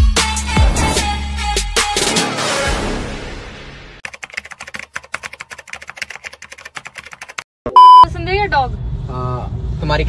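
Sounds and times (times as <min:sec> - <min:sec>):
rapid keyboard typing: 0:04.0 - 0:07.5
loud electronic beep: 0:07.7 - 0:08.1.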